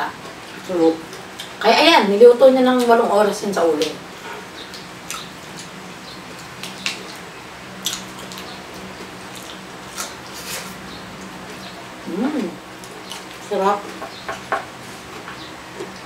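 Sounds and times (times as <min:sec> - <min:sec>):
chewing and wet mouth smacks: 0:04.6 - 0:11.3, 0:12.8 - 0:13.5.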